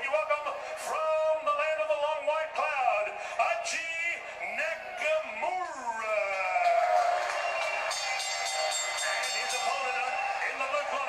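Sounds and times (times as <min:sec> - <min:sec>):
music: 0:07.6 - 0:11.0.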